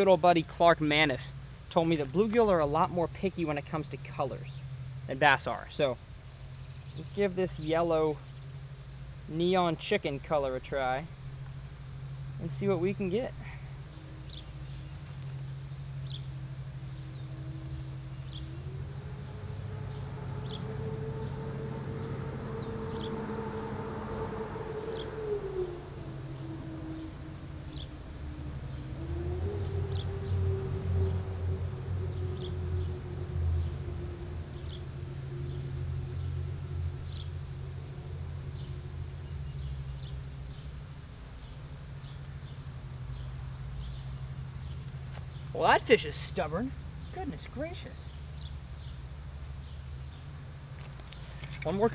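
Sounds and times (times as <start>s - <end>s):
low rumble: 10.2s - 45.4s
motor running: 13.6s - 41.6s.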